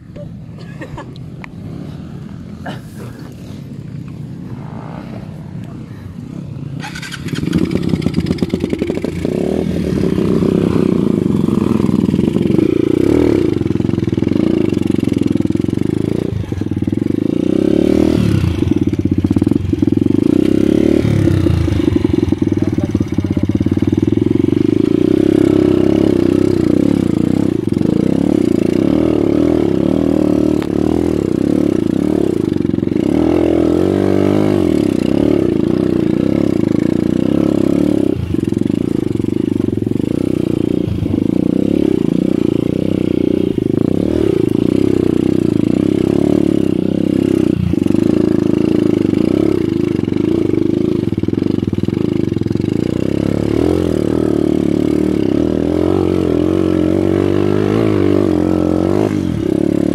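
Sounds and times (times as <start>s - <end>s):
dirt bike engine revving: 6.8s - 59.9s.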